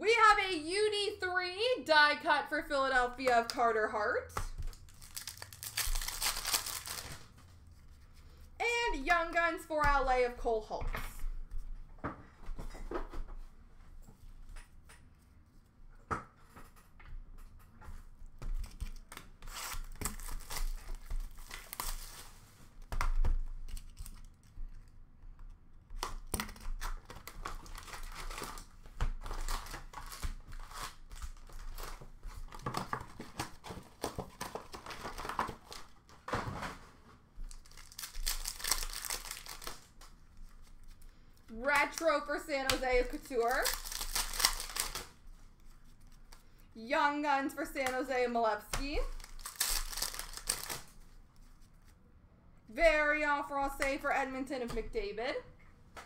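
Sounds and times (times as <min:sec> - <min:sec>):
wrappers crinkling: 0:04.6 - 0:07.4, 0:18.7 - 0:22.4, 0:26.5 - 0:36.2, 0:37.4 - 0:46.4, 0:49.0 - 0:51.9
foil packs tearing: 0:04.7 - 0:07.2, 0:37.5 - 0:39.9, 0:43.2 - 0:45.1, 0:49.1 - 0:51.0.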